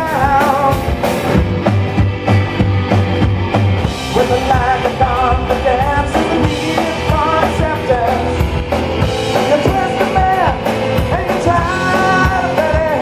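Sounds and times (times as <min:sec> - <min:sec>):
man singing: 0:00.0 - 0:01.3, 0:04.0 - 0:13.0
live rock band: 0:00.0 - 0:13.0
low bass notes: 0:00.0 - 0:13.0.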